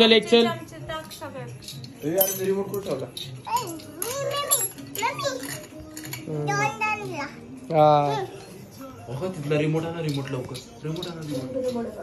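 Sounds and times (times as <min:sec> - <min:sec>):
metal spoons clinking on plates: 0:00.0 - 0:06.8, 0:08.2 - 0:12.0.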